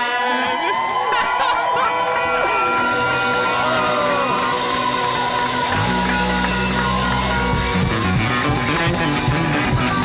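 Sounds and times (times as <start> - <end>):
crowd cheering and singing along: 0.0 - 10.0
live band playing: 1.9 - 10.0.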